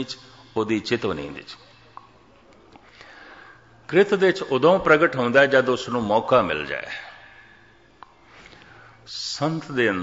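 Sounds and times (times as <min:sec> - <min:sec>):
man talking: 0:00.0 - 0:02.0, 0:03.9 - 0:07.3, 0:09.1 - 0:10.0
man breathing in: 0:02.8 - 0:03.8, 0:07.0 - 0:09.0.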